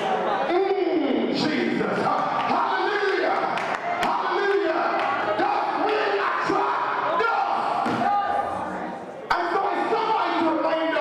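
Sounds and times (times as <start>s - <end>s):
man speaking into a microphone: 0.3s - 7.8s, 9.3s - 11.0s.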